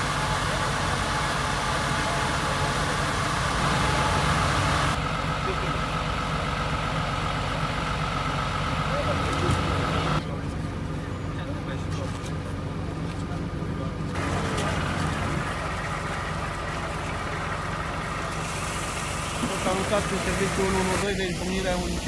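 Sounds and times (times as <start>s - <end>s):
engine idling: 0.0s - 22.0s.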